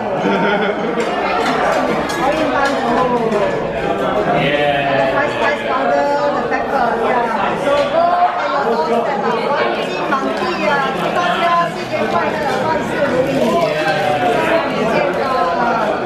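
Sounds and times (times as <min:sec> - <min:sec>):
people talking at once: 0:00.0 - 0:16.0.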